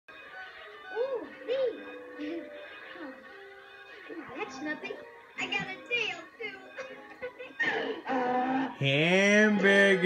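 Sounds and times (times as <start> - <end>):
cartoon music through tv speaker: 0.1 - 10.0.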